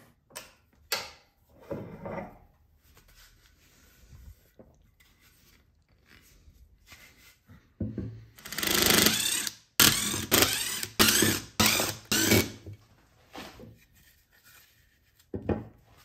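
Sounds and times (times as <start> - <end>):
cordless driver driving screws: 8.4 - 12.6.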